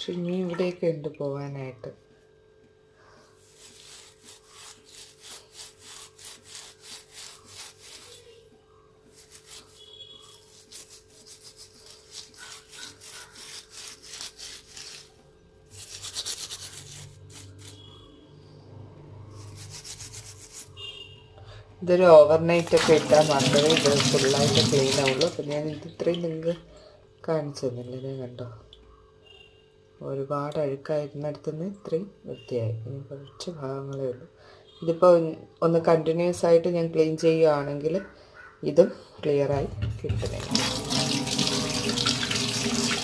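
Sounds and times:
scrubbing a stove burner: 0:03.4 - 0:08.5, 0:09.1 - 0:15.1, 0:15.7 - 0:17.9.

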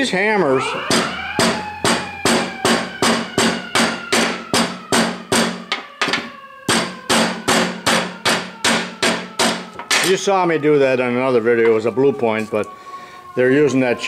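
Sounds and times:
hammer striking plastic handle: 0:00.9 - 0:10.1.

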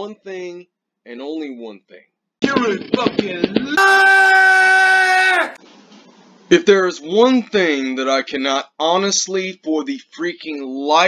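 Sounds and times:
man yelling: 0:03.6 - 0:05.6.

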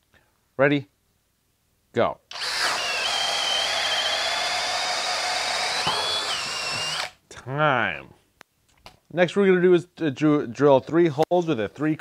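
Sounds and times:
hammer drill boring through wood: 0:02.3 - 0:07.2.

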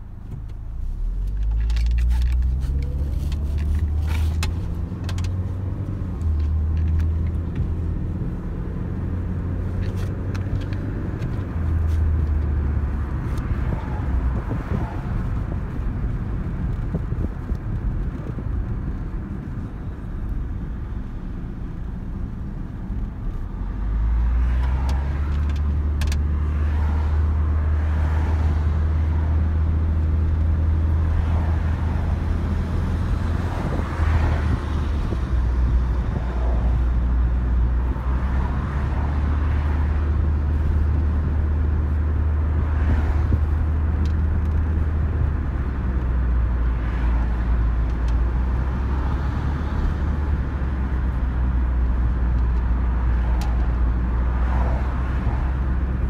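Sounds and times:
car cabin road noise: 0:00.0 - 0:56.0.

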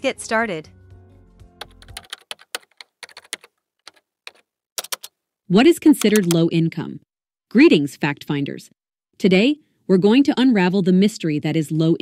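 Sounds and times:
background music tones: 0:00.0 - 0:02.3
keyboard typing clicks: 0:01.6 - 0:05.1, 0:05.9 - 0:06.5.

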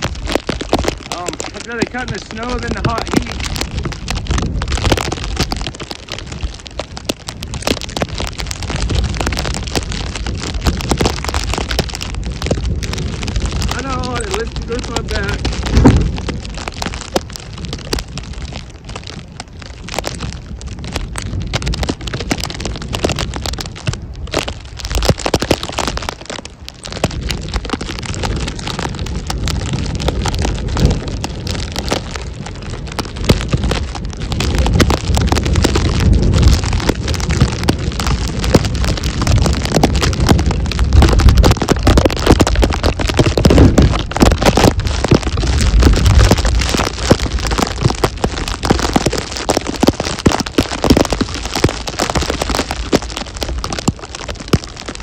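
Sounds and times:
snow crackling on microphone: 0:00.0 - 0:55.0
wind gusts rumbling: 0:00.0 - 0:55.0.

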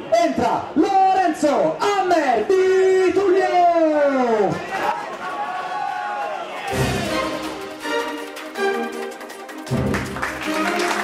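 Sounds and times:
crowd noise in a large hall: 0:00.0 - 0:11.0.

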